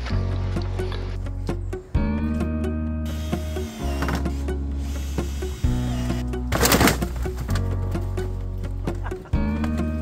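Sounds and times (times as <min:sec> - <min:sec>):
background music with bass and chords: 0:00.0 - 0:10.0.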